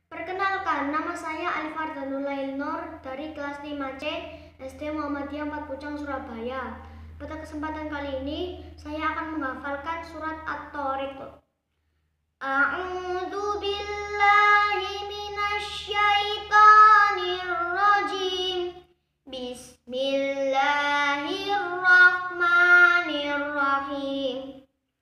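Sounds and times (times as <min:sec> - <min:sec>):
boy chanting melodically: 0:00.0 - 0:11.3, 0:12.4 - 0:24.6.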